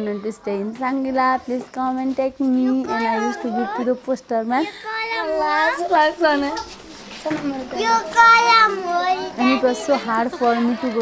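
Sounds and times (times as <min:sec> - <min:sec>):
girl speaking: 0:02.5 - 0:04.0, 0:04.6 - 0:06.7, 0:07.3 - 0:10.9.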